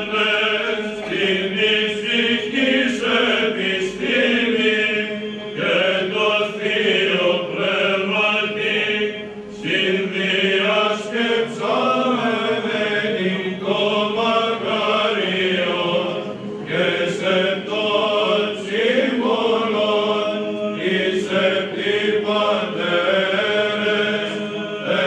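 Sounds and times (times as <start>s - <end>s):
men singing chant: 0.0s - 25.0s.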